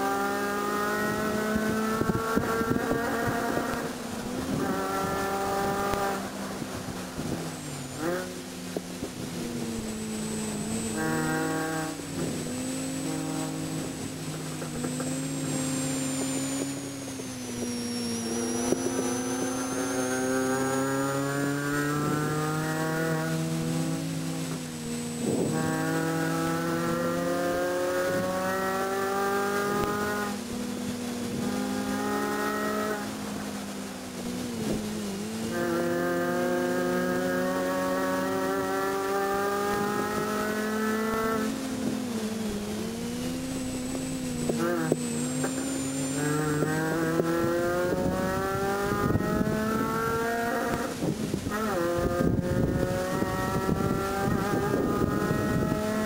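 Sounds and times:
car engine revving: 0.0 - 56.0.

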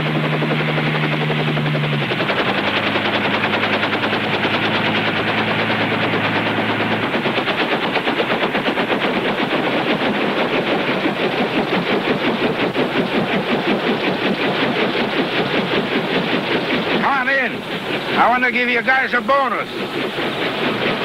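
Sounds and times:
helicopter rotor chopping: 0.0 - 21.0.

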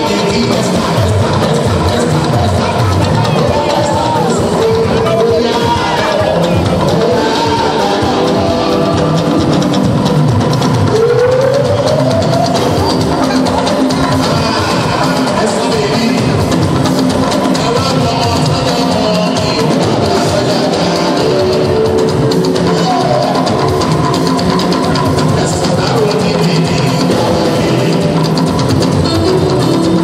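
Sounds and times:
drum kit beat: 0.0 - 30.0
guitar: 0.0 - 30.0
keyboard: 0.0 - 30.0
live band music: 0.0 - 30.0
talking drum: 0.0 - 30.0.

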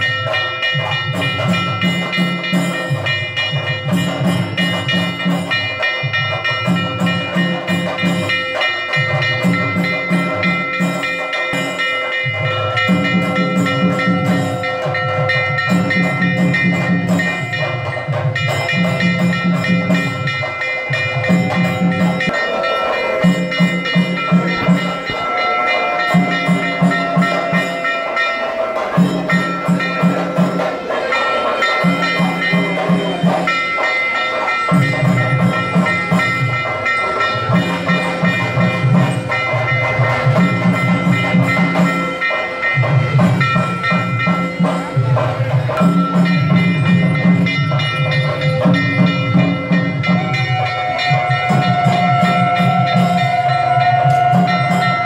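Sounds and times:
drum beating: 0.0 - 55.0
sustained ringing tones: 0.0 - 55.0.

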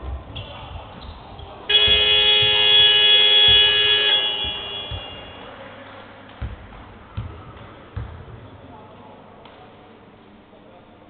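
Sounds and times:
game clock buzzer horn blast: 1.7 - 5.4.

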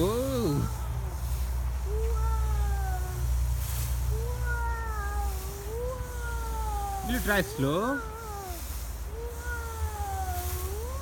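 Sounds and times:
child's drawn-out vocal calls: 0.0 - 11.0.

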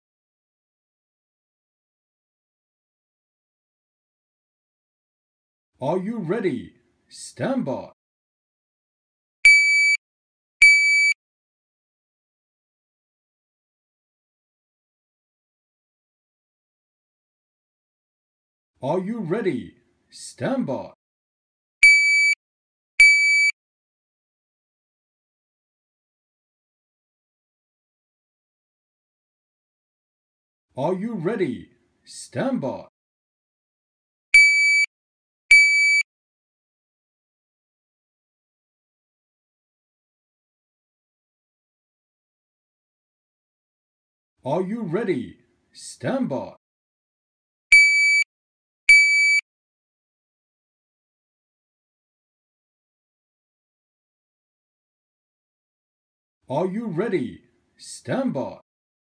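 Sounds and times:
shot timer beep: 9.5 - 10.0, 10.6 - 11.2, 21.8 - 22.4, 23.0 - 23.5, 34.4 - 34.9, 35.5 - 36.0, 47.7 - 48.3, 48.9 - 49.4.

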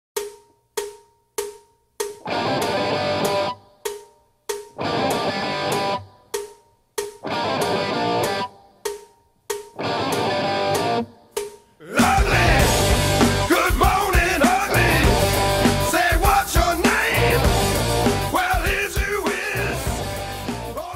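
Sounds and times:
rock music with guitar and drums: 2.2 - 4.0, 4.6 - 9.0, 9.6 - 20.9.

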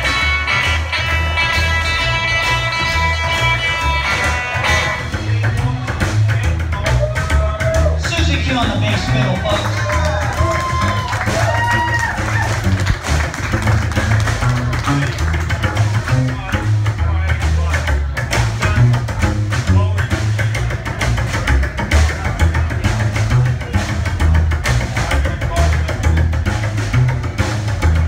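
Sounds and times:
electric guitar lead: 0.0 - 5.3
steady drum beat: 0.0 - 28.0
upright double bass walking: 0.0 - 28.0.

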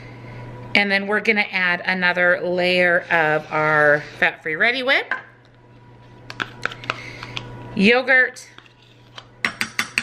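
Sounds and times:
spoon scraping plastic cup: 6.3 - 7.5, 8.4 - 9.3.

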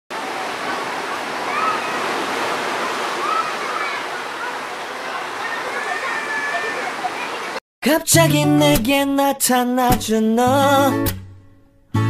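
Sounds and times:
faint voices: 0.1 - 7.6.

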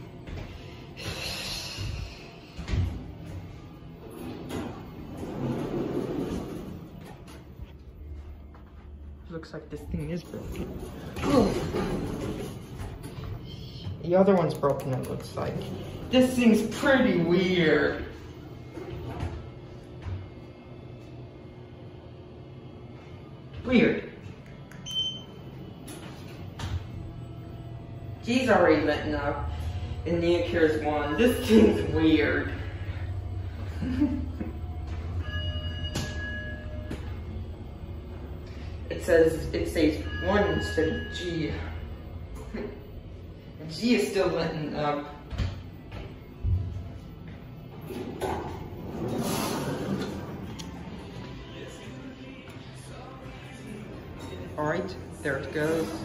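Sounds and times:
elevator cab low hum: 0.0 - 55.8
elevator doors sliding open: 3.9 - 7.6, 10.3 - 13.2, 47.7 - 51.1
elevator button beep: 24.7 - 26.8, 34.6 - 37.4.

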